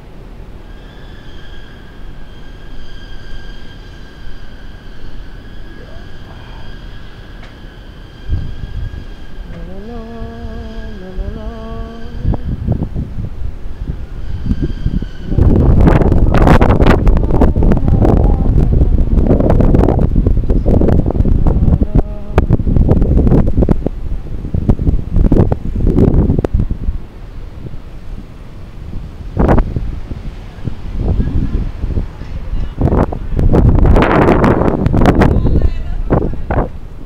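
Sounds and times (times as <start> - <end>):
wind buffeting microphone: 2.0 - 37.0.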